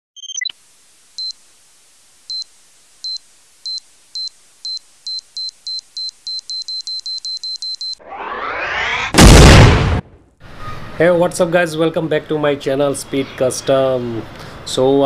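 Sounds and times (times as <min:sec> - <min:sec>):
electronic beeps: 0:00.2 - 0:00.6, 0:03.1 - 0:09.1
faint hiss: 0:00.5 - 0:07.1.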